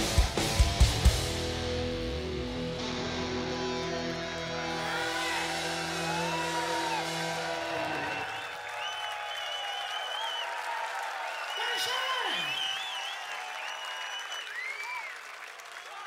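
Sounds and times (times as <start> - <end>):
heavy metal band chord: 0.0 - 8.4
crowd cheering: 0.0 - 16.0
whistles from crowd: 5.6 - 16.0.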